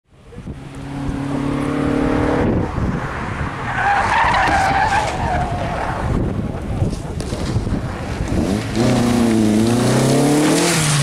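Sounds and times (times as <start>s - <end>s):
car engine at steady revs: 0.2s - 3.0s
tyres squealing: 3.7s - 5.8s.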